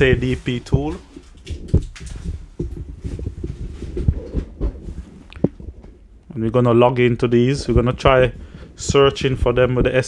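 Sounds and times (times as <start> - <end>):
rustling handling noise: 0.0 - 10.0.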